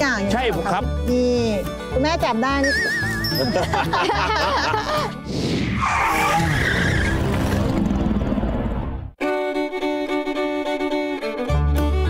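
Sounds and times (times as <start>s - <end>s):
noisy skidding sound effect: 5.3s - 8.7s.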